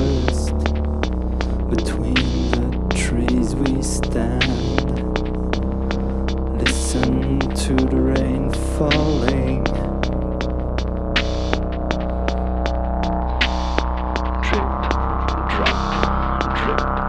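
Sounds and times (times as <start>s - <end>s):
drum machine ticks: 0.0s - 17.0s
low synth drone: 0.0s - 17.0s
wavering synth notes: 8.0s - 17.0s.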